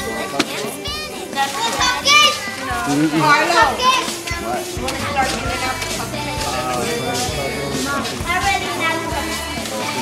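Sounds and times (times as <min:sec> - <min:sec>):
adult chatter: 0:00.0 - 0:10.0
children's high-pitched voices: 0:00.0 - 0:10.0.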